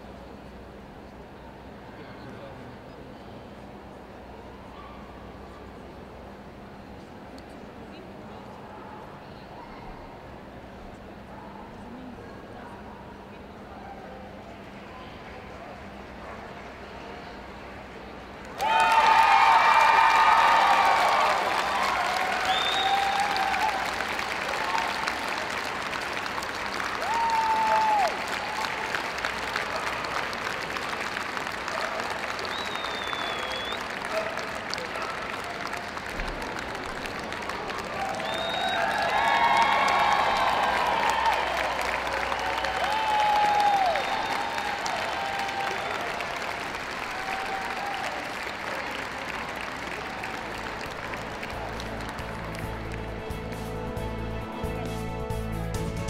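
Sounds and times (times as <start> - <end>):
crowd applauding: 17.7 - 56.0.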